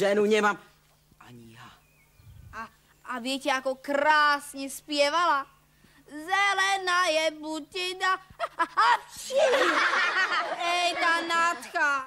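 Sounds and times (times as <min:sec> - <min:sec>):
children laughing: 0:08.3 - 0:12.0.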